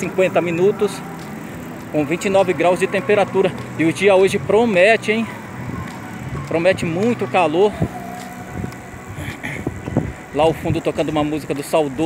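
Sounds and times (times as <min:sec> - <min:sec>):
bicycles passing: 0:00.0 - 0:12.0
faint background music: 0:00.0 - 0:12.0
wind on microphone: 0:07.7 - 0:10.9.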